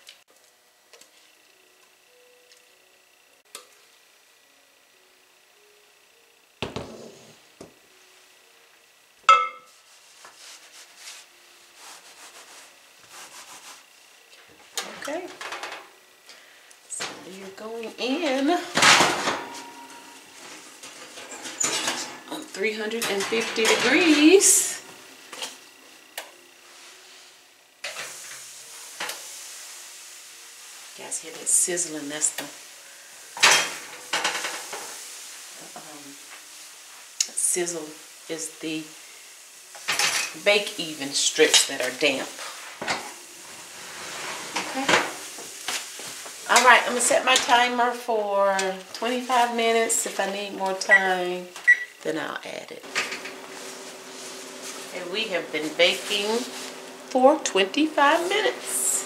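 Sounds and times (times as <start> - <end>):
steady sizzling hiss: 0.0 - 59.0
metal pans clinking and scraping: 18.8 - 24.5.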